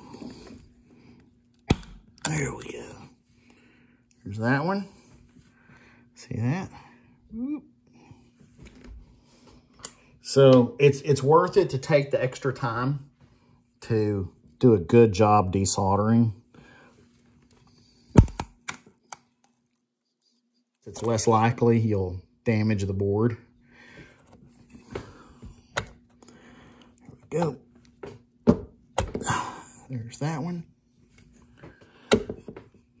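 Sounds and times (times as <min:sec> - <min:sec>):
capacitor snapping loose: 0:18.2 - 0:18.9.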